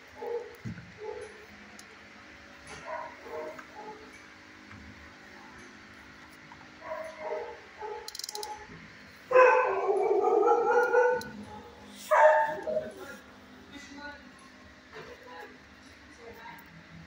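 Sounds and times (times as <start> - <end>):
dog barking and yelping: 0.2 - 1.4, 2.8 - 4.1, 6.8 - 8.7, 9.3 - 13.0.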